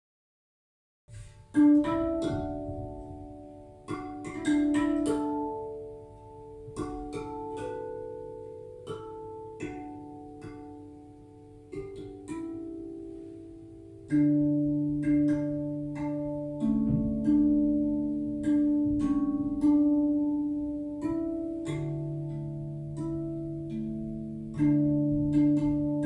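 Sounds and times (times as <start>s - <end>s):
steel tongue drum notes: 1.2s - 26.0s.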